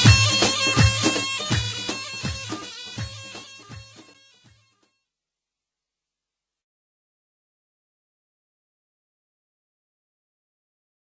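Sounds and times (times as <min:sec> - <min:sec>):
music with drum beat: 0:00.0 - 0:04.7.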